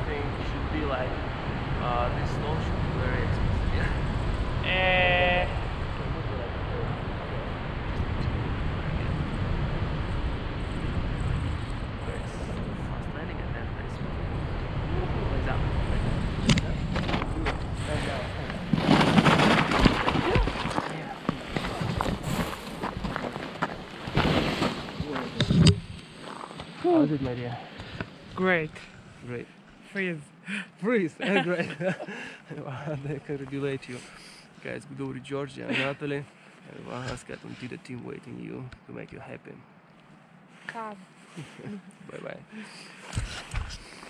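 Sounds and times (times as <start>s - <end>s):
wind rushing over microphone: 0.0s - 29.4s.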